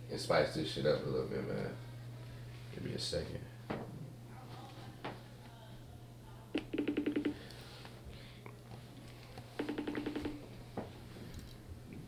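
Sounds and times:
phone call ringing beeps: 0:06.6 - 0:07.4, 0:09.6 - 0:10.4.

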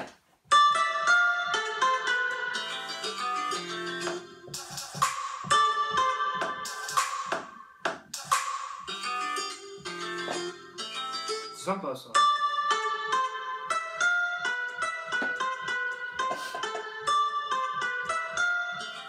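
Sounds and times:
plucked guitar-like melody: 0:00.0 - 0:19.0
sharp percussion hits: 0:06.4 - 0:09.1.

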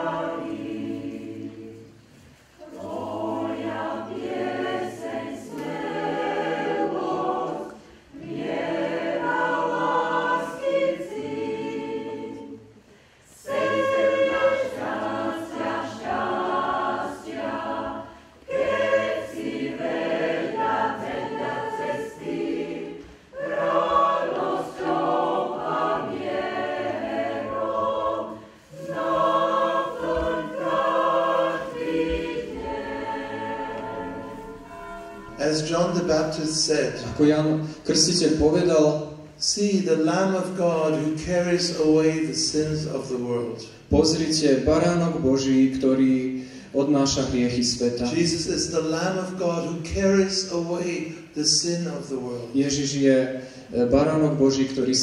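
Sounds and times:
mixed choir singing: 0:00.0 - 0:38.8.

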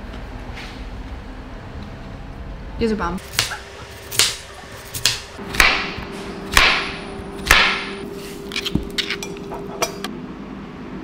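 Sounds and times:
knife slicing vegetables on board: 0:03.2 - 0:05.8.

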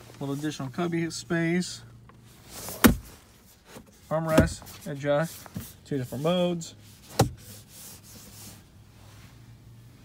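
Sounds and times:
hand rubbing armrest: 0:02.3 - 0:09.6
armrest sliding click: 0:07.1 - 0:07.5.

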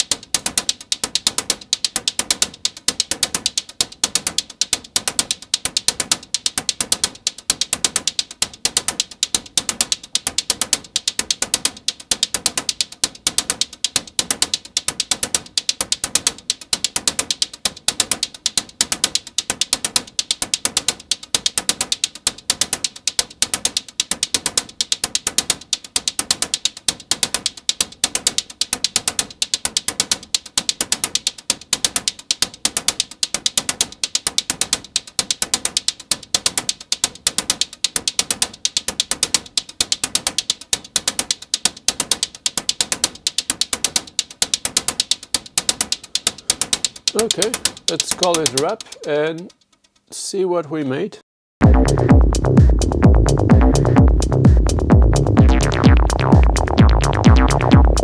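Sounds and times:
synthesized hi-hat loop: 0:00.0 - 0:50.6, 0:51.6 - 0:58.0.

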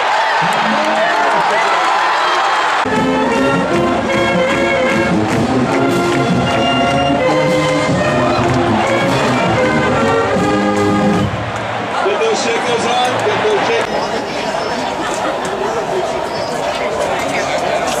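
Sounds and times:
crowd noise: 0:00.0 - 0:18.0
marching band playing: 0:02.8 - 0:14.4.

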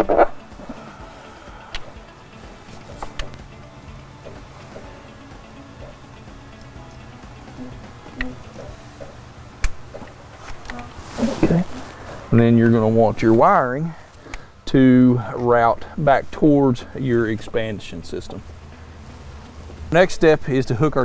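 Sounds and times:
quiet background music: 0:00.0 - 0:21.0.

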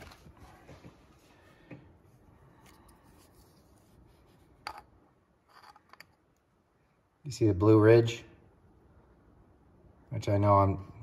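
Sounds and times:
soft handling clicks and rubs: 0:00.0 - 0:04.9.

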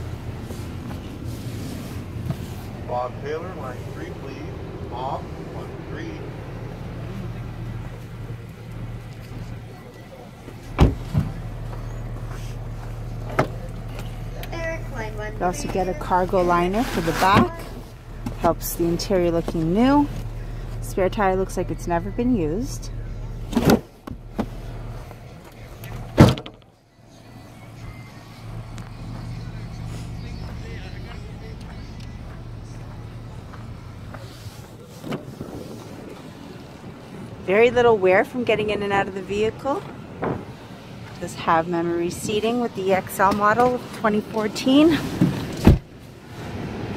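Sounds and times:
steady low hum: 0:00.0 - 0:43.3
car door shutting: 0:10.6 - 0:12.3, 0:13.2 - 0:14.2, 0:23.4 - 0:24.9, 0:25.8 - 0:26.7, 0:45.0 - 0:45.9
car trunk lid thud: 0:10.8 - 0:11.3, 0:26.1 - 0:26.6, 0:45.2 - 0:45.9.

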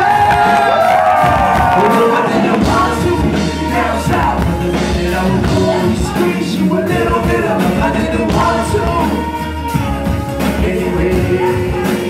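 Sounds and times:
live band music: 0:00.0 - 0:12.0
low bass: 0:01.1 - 0:12.0.

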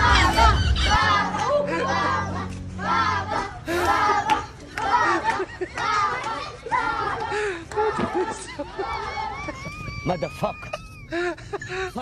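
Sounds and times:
children calling out and talking: 0:00.0 - 0:12.0.

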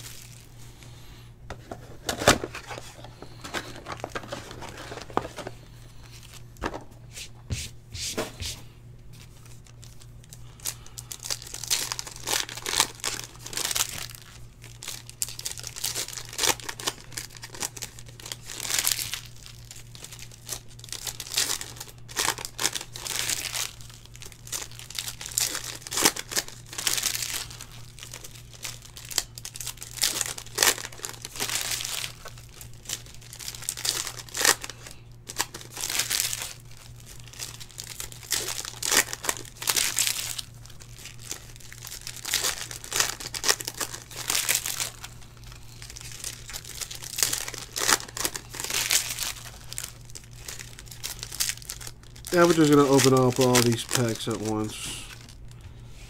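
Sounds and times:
foil wrappers crinkling and tearing: 0:00.0 - 0:06.8, 0:09.1 - 0:55.9
steady low hum: 0:00.0 - 0:56.0.

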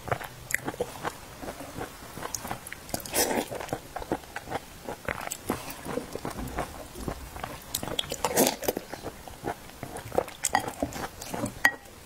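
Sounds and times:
chewing soft biscuits: 0:00.0 - 0:12.0.

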